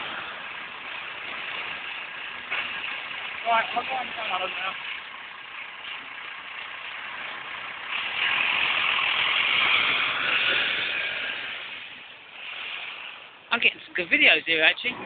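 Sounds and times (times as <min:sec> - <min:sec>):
bus driving past: 0:00.0 - 0:13.6.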